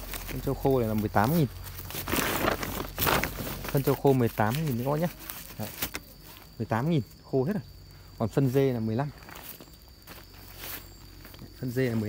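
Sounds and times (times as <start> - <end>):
plastic tarp rustling: 0.0 - 6.5
woven sacks being moved: 0.0 - 6.6
soft footsteps: 8.4 - 12.0.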